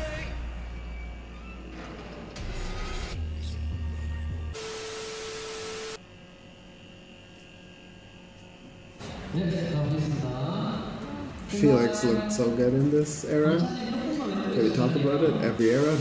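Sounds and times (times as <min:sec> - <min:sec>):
pop song with heavy bass: 0:00.0 - 0:00.8, 0:03.1 - 0:04.6
faint hum: 0:03.2 - 0:15.9
tv static: 0:04.6 - 0:06.0, 0:13.6 - 0:16.0.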